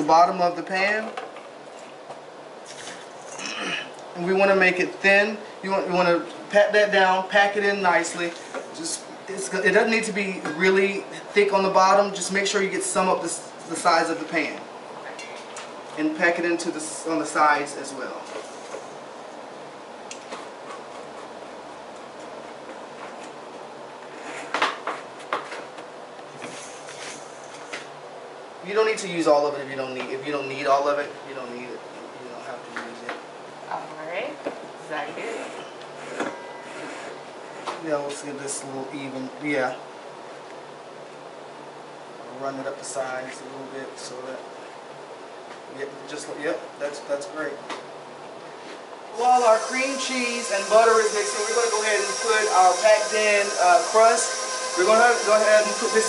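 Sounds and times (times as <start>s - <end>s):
background hum: 0.0s - 56.0s.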